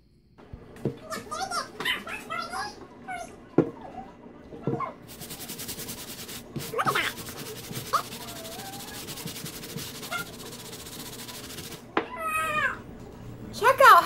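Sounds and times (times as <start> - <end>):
brush scrubbing a sneaker: 5.0 - 11.9.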